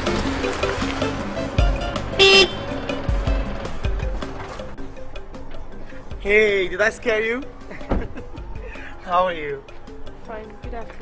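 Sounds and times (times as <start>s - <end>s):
film music with low beat: 0.0s - 11.0s
car horn toot: 2.1s - 2.8s.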